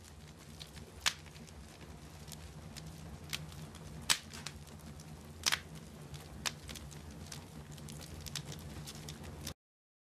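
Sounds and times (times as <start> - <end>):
low steady hum: 0.0 - 9.6
wood fire crackling and popping: 0.0 - 9.6.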